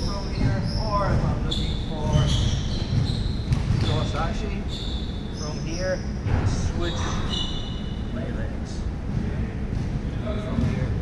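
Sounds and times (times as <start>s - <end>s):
short high squeaks: 0.2s - 6.0s, 6.8s - 8.1s.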